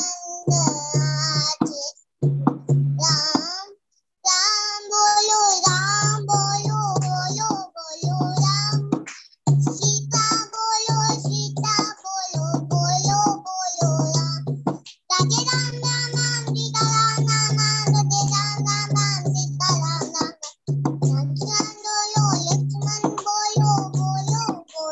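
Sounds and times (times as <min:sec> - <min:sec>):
girl singing devotional song: 0:00.0 - 0:24.9.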